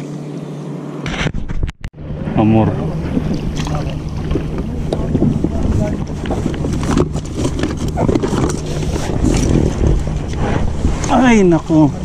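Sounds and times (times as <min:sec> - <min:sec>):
low steady hum: 0:00.0 - 0:12.0
wind buffeting microphone: 0:02.0 - 0:12.0
water splashing against boat: 0:02.4 - 0:12.0.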